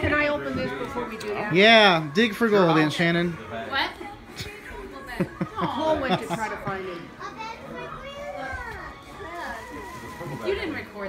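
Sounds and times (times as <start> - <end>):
family chatter with children: 0.0 - 11.0.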